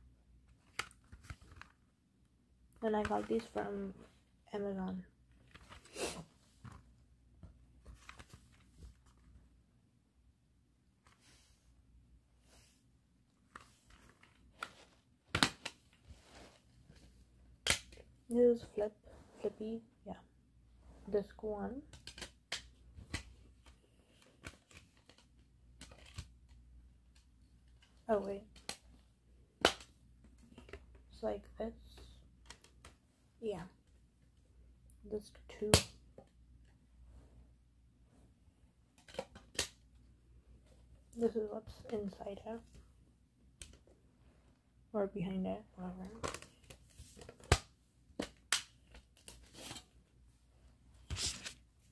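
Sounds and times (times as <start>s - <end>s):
plastic cd case clicks: 15.3s - 15.8s, 17.6s - 18.0s, 21.9s - 23.3s, 39.0s - 39.8s.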